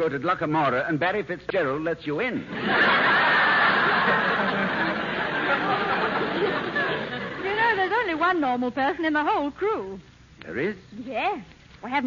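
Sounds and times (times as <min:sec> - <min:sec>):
studio audience laughing: 0:02.5 - 0:07.8.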